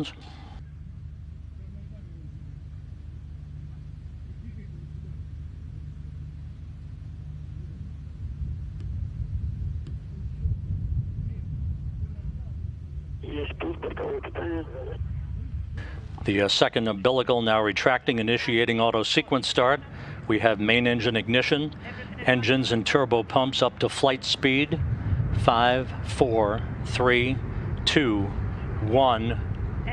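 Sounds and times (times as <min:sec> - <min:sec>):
low uneven rumble: 0:00.0 - 0:29.9
voice over radio: 0:13.2 - 0:15.0.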